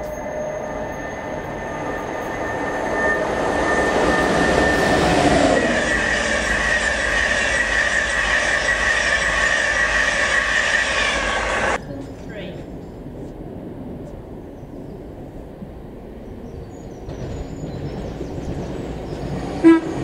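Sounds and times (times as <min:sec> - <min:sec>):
high whine: 0:00.0 - 0:11.8
train wheels rumbling on rails: 0:00.0 - 0:14.2, 0:14.8 - 0:20.0.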